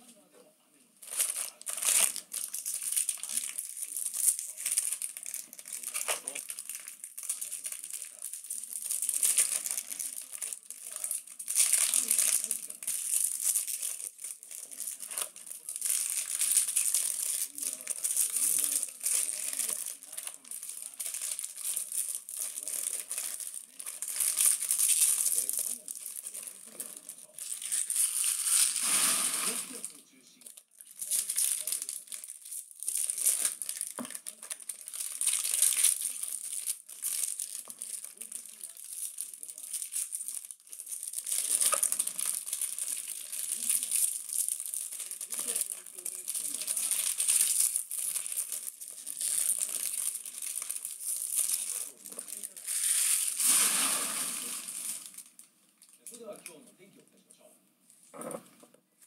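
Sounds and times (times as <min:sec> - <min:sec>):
foil wrappers crinkling and tearing: 0:01.0 - 0:56.4.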